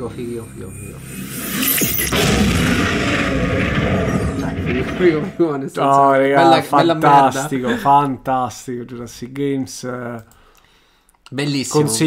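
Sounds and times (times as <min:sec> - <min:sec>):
loud boom hit with rumbling: 0:01.8 - 0:05.6.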